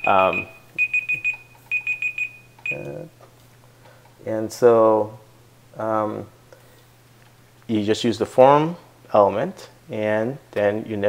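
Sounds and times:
high-pitched electronic beeps: 0.0s - 3.0s
faint low hum: 0.0s - 11.0s.

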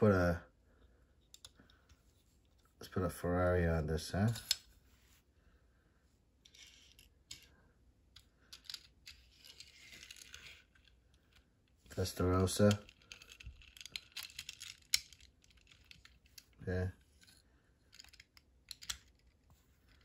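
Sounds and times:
toy car clicks and scraping: 1.3s - 1.9s, 6.4s - 7.5s, 8.1s - 20.0s.

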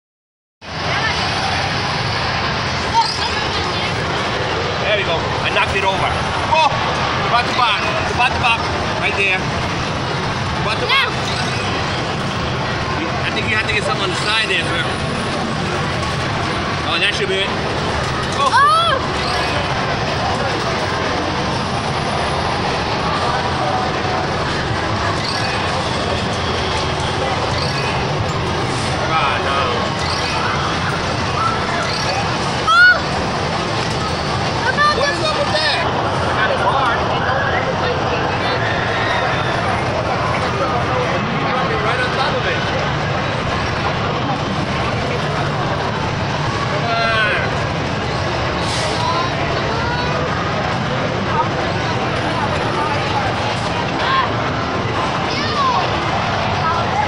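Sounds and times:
crowd chatter: 0.6s - 57.0s
arcade game machine noise: 0.7s - 57.0s.

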